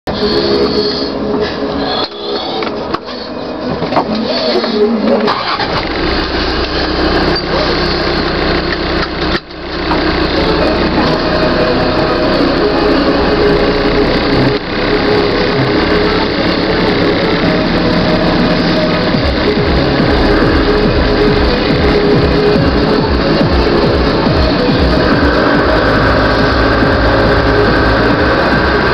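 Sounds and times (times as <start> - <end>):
engine idling: 0.0 - 28.9
music playing: 0.0 - 28.9.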